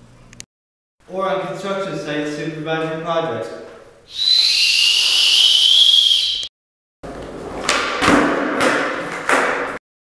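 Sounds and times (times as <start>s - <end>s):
whistle blast: 4.1s - 6.5s
skateboard wheels rolling on concrete: 7.0s - 9.8s.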